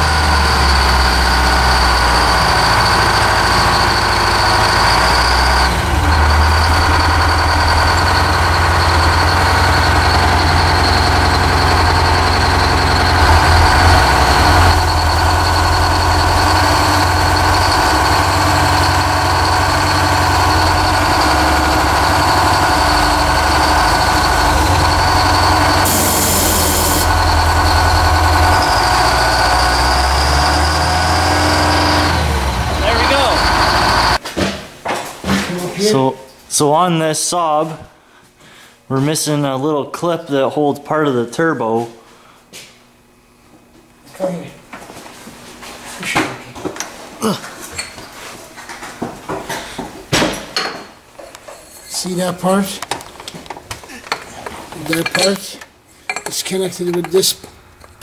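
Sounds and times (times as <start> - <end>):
diesel engine running: 0.0 - 34.2
high-pitched squeal: 0.0 - 34.2.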